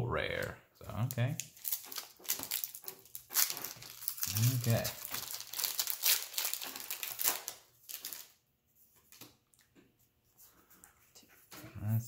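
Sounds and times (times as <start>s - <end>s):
foil wrapper crinkling: 1.4s - 8.4s.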